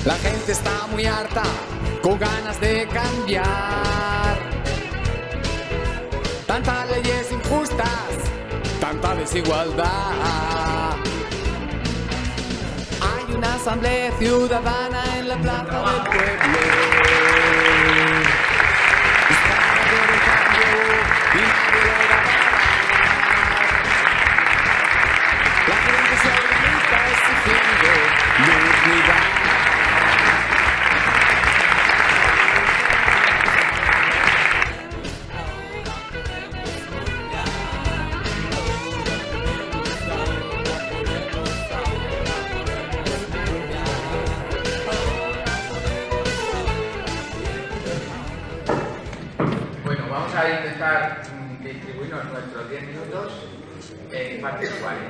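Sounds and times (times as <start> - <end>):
guitar-backed song: 0.0 - 49.2
crowd applauding: 15.7 - 35.3, 35.9 - 48.4.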